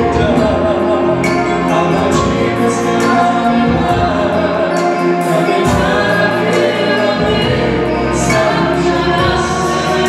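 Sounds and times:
group singing gospel song: 0:00.0 - 0:10.0.

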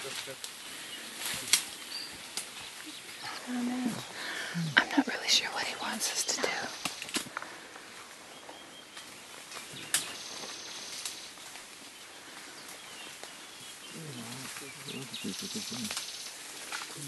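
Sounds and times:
steady hiss: 0:03.5 - 0:07.6, 0:13.6 - 0:17.0.

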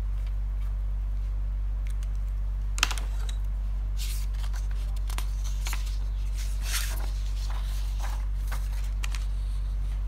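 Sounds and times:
steady low hum: 0:00.0 - 0:10.0
paper rustling: 0:04.0 - 0:10.0.

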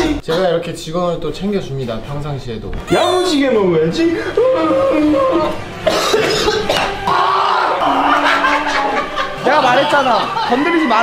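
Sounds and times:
background music: 0:02.4 - 0:11.0
man coughing: 0:05.8 - 0:07.0
laughter: 0:07.8 - 0:10.8.

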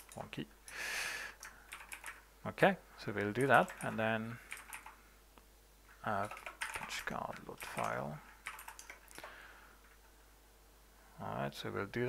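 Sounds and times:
computer keyboard keystrokes: 0:01.4 - 0:02.2, 0:03.3 - 0:05.0, 0:06.2 - 0:10.0.

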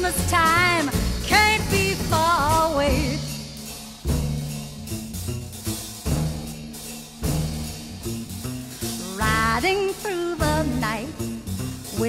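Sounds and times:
band holding low bass notes: 0:00.0 - 0:12.0
heavy drum accents: 0:00.0 - 0:12.0.

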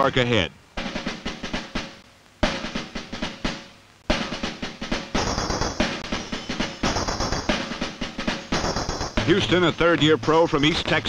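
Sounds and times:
snare drum rolls music: 0:00.8 - 0:11.0.

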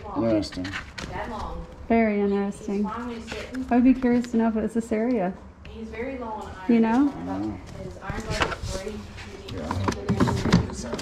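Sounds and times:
background conversation: 0:00.0 - 0:11.0.

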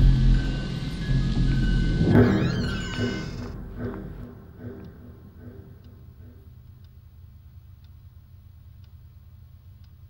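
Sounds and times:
low drone with high tones: 0:00.0 - 0:06.6
shrill wavering screech: 0:00.1 - 0:04.3.

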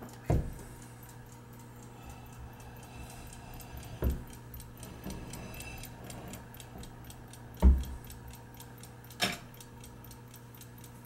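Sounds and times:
clock movement ticking rapidly: 0:00.0 - 0:11.0.

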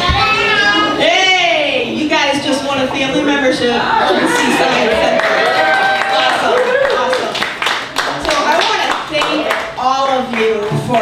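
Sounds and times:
audience clapping: 0:04.9 - 0:11.0.

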